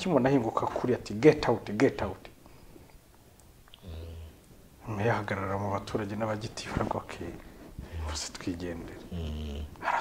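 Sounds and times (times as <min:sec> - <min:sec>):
man speaking quietly: 0:03.8 - 0:10.0.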